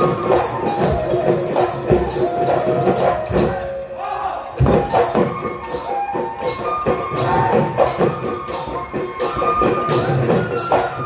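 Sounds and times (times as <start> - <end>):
group shouting together: 4.0 - 4.6.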